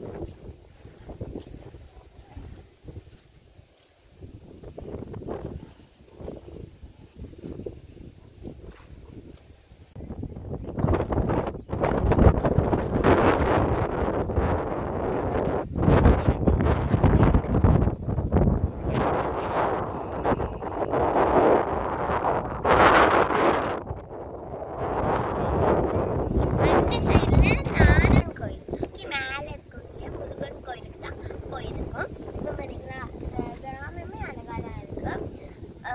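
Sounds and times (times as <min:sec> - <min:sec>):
wind buffeting microphone: 0:00.0 - 0:35.9.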